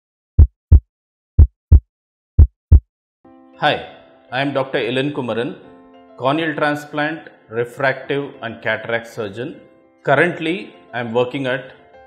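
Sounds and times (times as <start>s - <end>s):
heartbeat thumps: 0.4s - 0.8s, 1.4s - 1.8s, 2.4s - 2.8s
soft background music: 3.3s - 12.0s.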